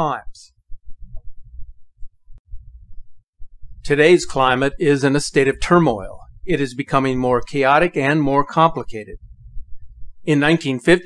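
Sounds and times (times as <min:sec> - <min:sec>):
low throbbing rumble: 0:00.5 - 0:04.0, 0:05.7 - 0:06.6, 0:09.2 - 0:10.3
person narrating: 0:03.8 - 0:09.2, 0:10.2 - 0:11.0.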